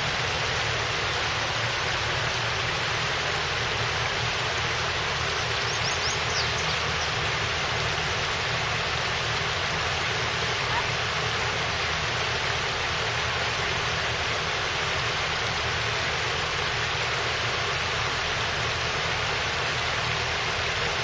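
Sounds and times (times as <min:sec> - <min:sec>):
river water flowing over rocks: 0:00.0 - 0:21.0.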